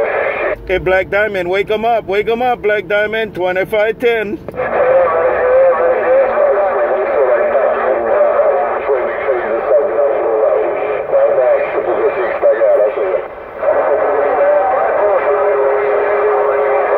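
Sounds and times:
voices over radio speaker: 0:00.0 - 0:16.9.

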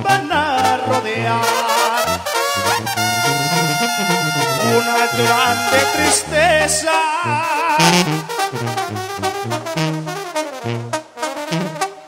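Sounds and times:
brass band playing: 0:00.0 - 0:12.0
tuba bass notes: 0:00.0 - 0:12.0.

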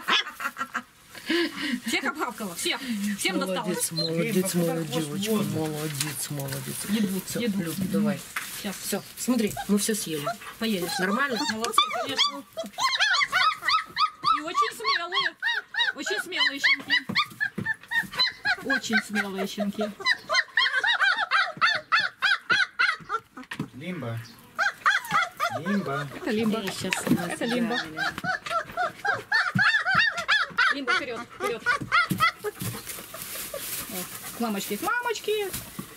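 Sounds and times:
puppies whining and yelping: 0:03.2 - 0:05.6, 0:09.4 - 0:23.5, 0:24.6 - 0:34.3.

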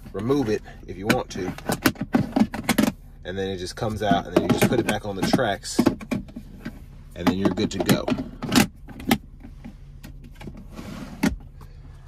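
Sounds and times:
plastic tray sliding scrape: 0:10.6 - 0:11.4.

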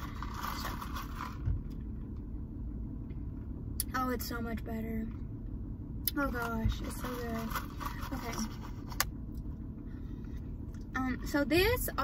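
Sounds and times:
low rumble inside car: 0:00.0 - 0:12.0.

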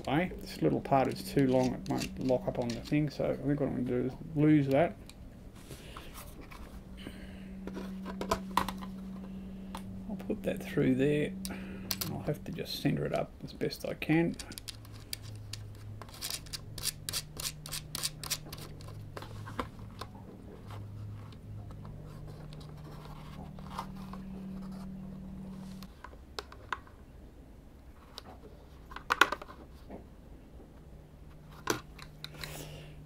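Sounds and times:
faint low hum: 0:00.0 - 0:33.0.

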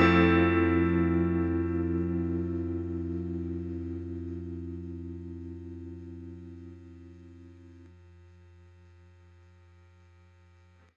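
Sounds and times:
electric guitar chord ringing: 0:00.0 - 0:08.0.

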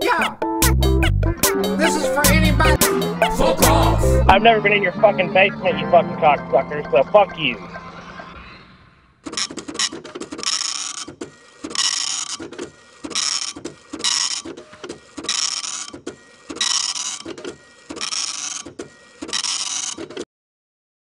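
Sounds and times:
printer buzzing: 0:02.8 - 0:20.2.

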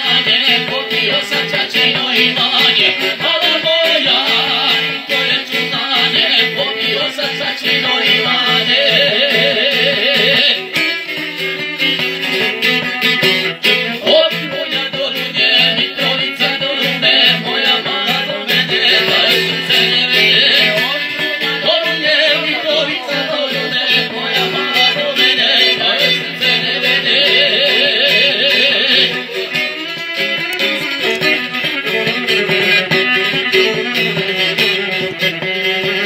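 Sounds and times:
man singing: 0:00.0 - 0:11.2, 0:12.0 - 0:36.0
plucked lute: 0:00.0 - 0:36.0
violin: 0:00.0 - 0:36.0
woman singing: 0:12.4 - 0:29.4.

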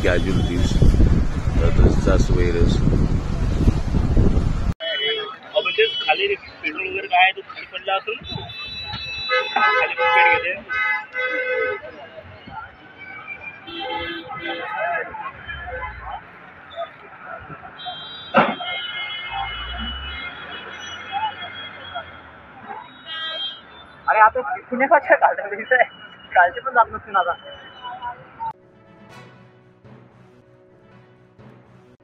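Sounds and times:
people talking: 0:00.0 - 0:00.8, 0:01.6 - 0:02.8, 0:24.1 - 0:28.4.

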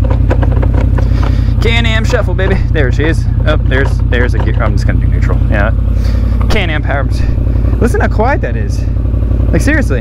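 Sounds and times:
gear selector clicks: 0:00.0 - 0:02.5, 0:03.7 - 0:04.9
engine idling: 0:00.0 - 0:10.0.

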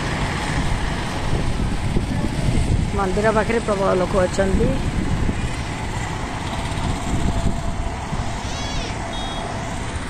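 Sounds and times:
city road traffic rumble: 0:00.0 - 0:10.0
short high beep: 0:09.1 - 0:09.5.

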